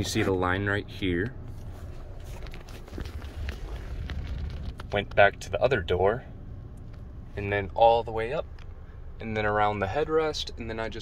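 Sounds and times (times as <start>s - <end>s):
steady low rumble: 0.0s - 11.0s
faint rustling: 1.2s - 7.8s.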